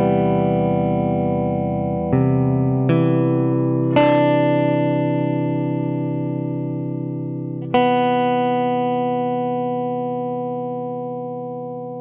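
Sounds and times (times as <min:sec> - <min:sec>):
electric guitar chord ringing: 0:00.0 - 0:12.0.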